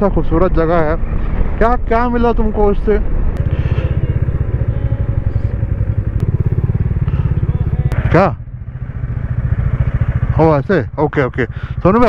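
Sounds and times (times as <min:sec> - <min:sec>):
motorcycle engine running: 0:03.4 - 0:12.0.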